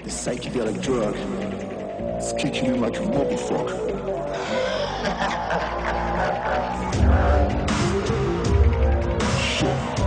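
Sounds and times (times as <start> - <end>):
hardstyle music: 0.0 - 10.0.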